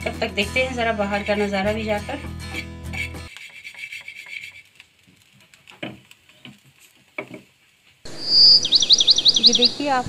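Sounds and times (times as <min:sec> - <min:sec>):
background music: 0:00.0 - 0:03.3.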